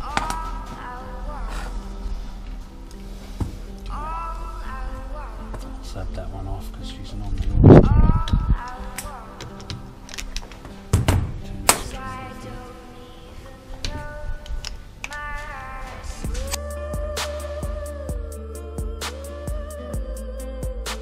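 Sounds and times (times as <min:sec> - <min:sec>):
background music sustained tones: 0:00.0 - 0:21.0.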